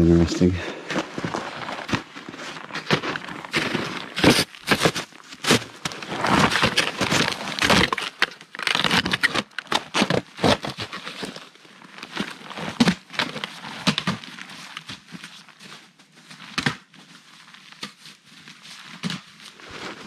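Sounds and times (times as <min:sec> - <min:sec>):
footsteps crunching in snow: 0:00.8 - 0:07.7, 0:17.0 - 0:20.0.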